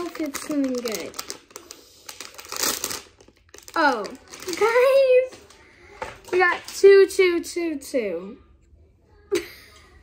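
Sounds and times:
toy packaging rustling and crackling: 0:00.0 - 0:07.2.

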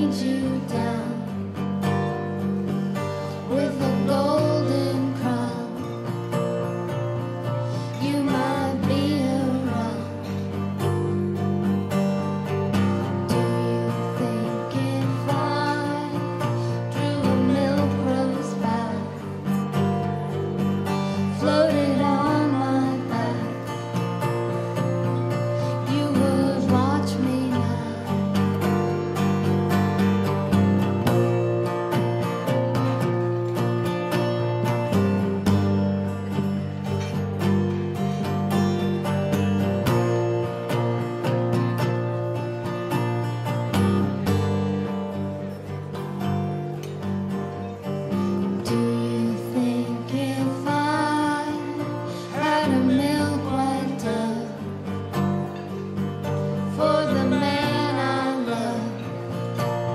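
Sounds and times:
person singing: 0:00.0 - 0:01.6, 0:03.4 - 0:06.1, 0:07.8 - 0:10.7, 0:13.3 - 0:28.9, 0:48.1 - 0:55.6, 0:56.6 - 0:59.8
acoustic guitars strumming: 0:00.0 - 0:59.9.

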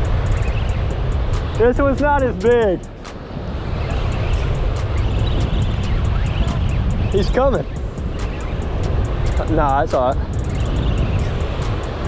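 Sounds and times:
surf: 0:00.0 - 0:12.0
wind on microphone: 0:00.0 - 0:12.0.

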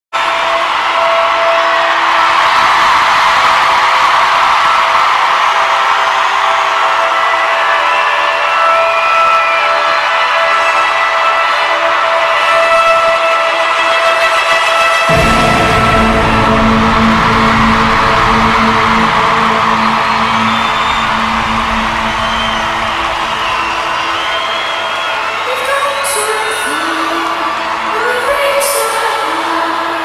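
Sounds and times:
stadium crowd cheering: 0:00.0 - 0:30.0
high shrieks or whistles: 0:14.9 - 0:25.8
sustained tone: 0:15.1 - 0:24.8.

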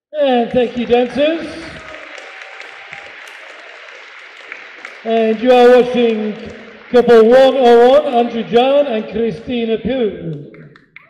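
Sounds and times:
audience applauding: 0:00.2 - 0:09.4.

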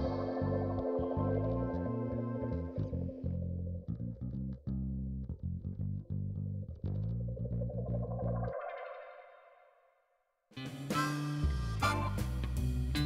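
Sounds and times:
guitar music: 0:00.0 - 0:08.5, 0:10.6 - 0:13.0
plucked bass line: 0:00.0 - 0:09.1, 0:11.4 - 0:13.0.

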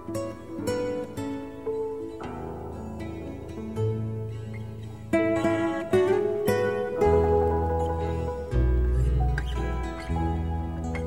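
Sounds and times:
acoustic guitar plucking notes: 0:00.0 - 0:11.0
deep bass note: 0:07.0 - 0:11.0.

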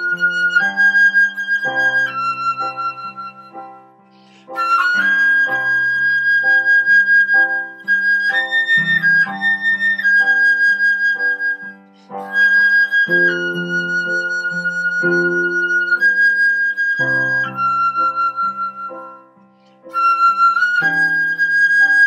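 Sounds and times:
digital piano chords: 0:00.0 - 0:22.0
flute melody: 0:00.0 - 0:22.0.

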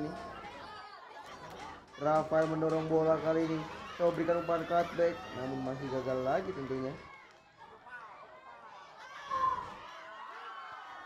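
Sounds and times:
faint crowd chatter: 0:00.0 - 0:11.0.

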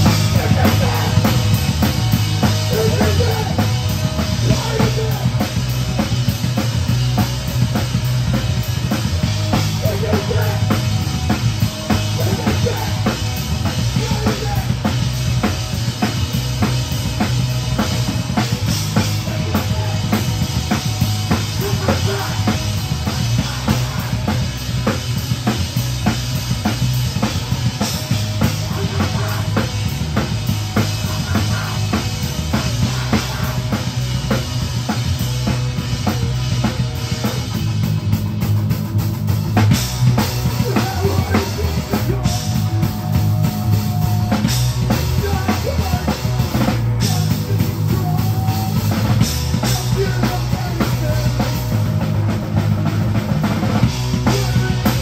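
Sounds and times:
drum kit beat: 0:00.0 - 0:55.0
rock band playing: 0:00.0 - 0:55.0.

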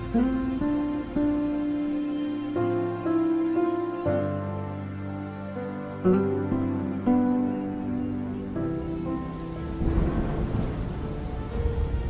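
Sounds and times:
rain: 0:00.0 - 0:12.0
soft background music: 0:00.0 - 0:12.0
low rumble of thunder: 0:08.4 - 0:12.0.

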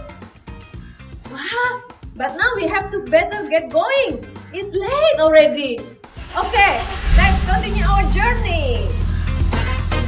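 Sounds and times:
background music: 0:00.0 - 0:10.0
woman speaking: 0:01.3 - 0:09.0
low rumbling noise: 0:06.1 - 0:10.0.

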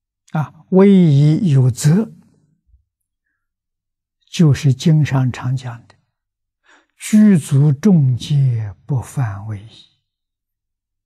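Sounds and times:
elderly man speaking: 0:00.3 - 0:02.2, 0:07.0 - 0:09.9
faint in-breath: 0:06.6 - 0:07.0.

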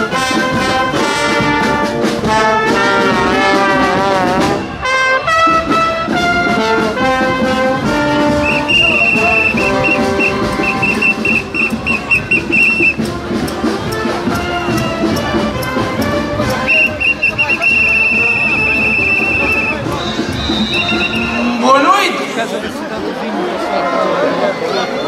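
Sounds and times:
brass band playing: 0:00.0 - 0:22.8.

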